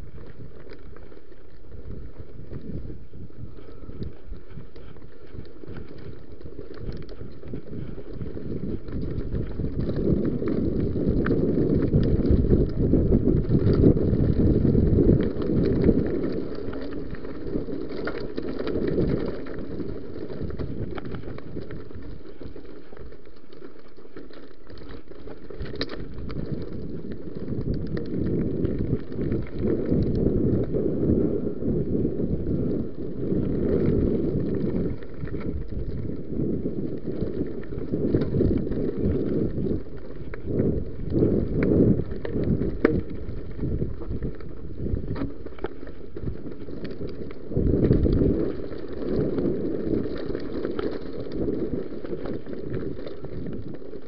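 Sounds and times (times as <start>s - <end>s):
wind buffeting microphone: 0.0s - 23.0s, 24.4s - 54.0s
bike rattling over stones: 0.0s - 54.0s
bike tyre noise: 0.0s - 54.0s.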